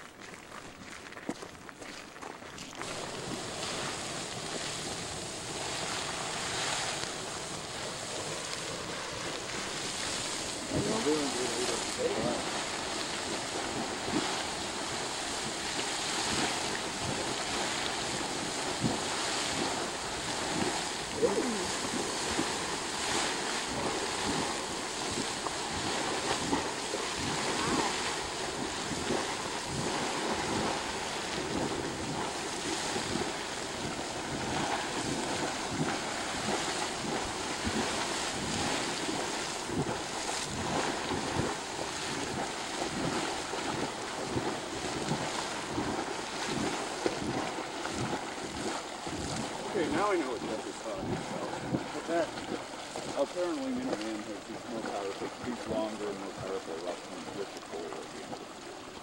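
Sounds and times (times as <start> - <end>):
splashing of falling water: 0.2 - 59.0
geyser water and steam jetting: 1.8 - 59.0.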